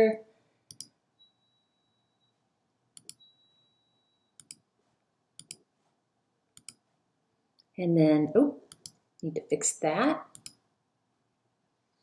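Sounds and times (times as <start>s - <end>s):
faint high-pitched whine: 0.0s - 12.0s
computer mouse clicking: 0.7s - 1.0s, 3.0s - 3.2s, 4.4s - 4.6s, 5.4s - 5.6s, 6.6s - 6.8s, 8.7s - 9.0s, 10.3s - 10.6s.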